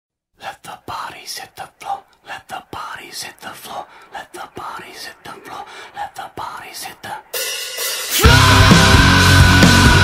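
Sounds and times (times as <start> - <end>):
breathy whispery commentator voice: 0.4 - 7.4.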